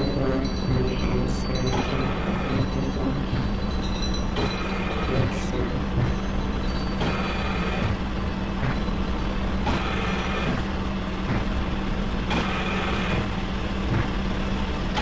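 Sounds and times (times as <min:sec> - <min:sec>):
grinding rumbling noise: 0:00.0 - 0:15.0
low hum: 0:00.0 - 0:15.0.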